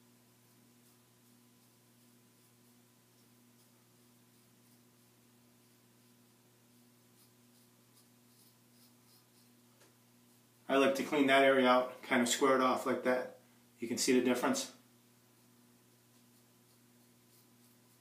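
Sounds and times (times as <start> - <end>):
faint electrical hum and hiss: 0.0 - 18.0
razor scratching beard stubble: 0.8 - 9.6, 15.4 - 18.0.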